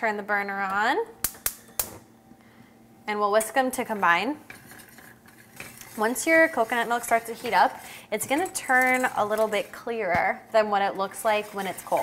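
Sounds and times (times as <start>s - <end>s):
faint steady burner sound: 0.0s - 12.0s.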